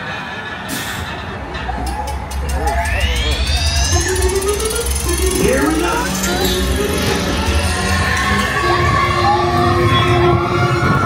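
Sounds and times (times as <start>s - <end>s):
roller coaster rumbling on track: 0.0s - 11.0s
music: 1.6s - 11.0s
rising motor whine: 1.8s - 11.0s.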